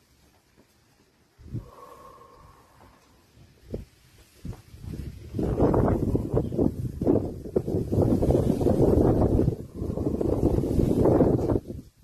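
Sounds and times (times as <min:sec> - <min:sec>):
person breathing out through nose: 0:01.4 - 0:03.4, 0:09.6 - 0:11.0.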